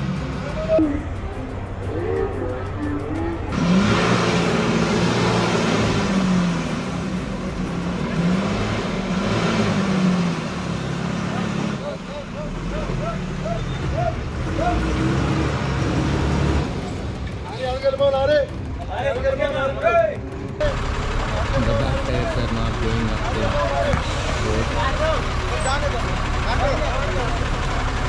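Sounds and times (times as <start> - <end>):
diesel bus engine revving: 0.0 - 19.6, 20.2 - 28.0.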